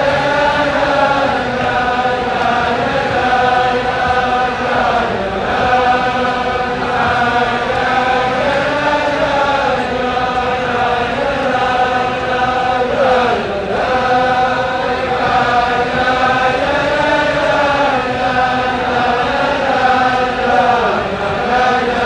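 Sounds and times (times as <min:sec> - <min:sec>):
men singing in unison: 0:00.0 - 0:22.0.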